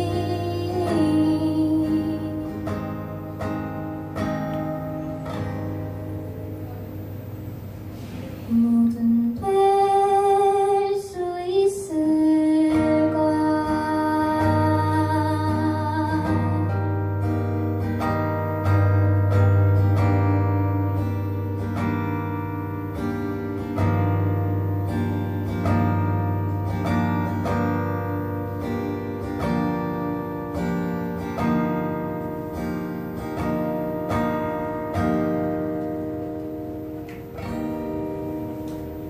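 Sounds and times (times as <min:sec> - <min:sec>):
fingerpicked acoustic guitar: 0:00.0 - 0:39.0.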